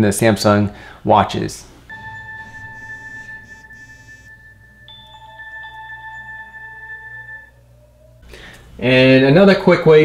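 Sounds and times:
electronic ringtone chime: 1.9 - 8.1.

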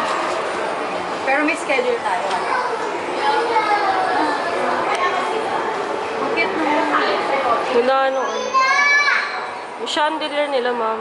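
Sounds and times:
people talking indoors: 0.0 - 11.0.

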